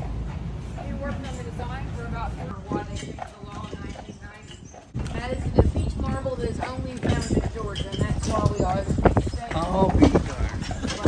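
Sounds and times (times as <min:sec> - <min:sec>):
horse hooves clip-clopping: 0:00.0 - 0:11.0.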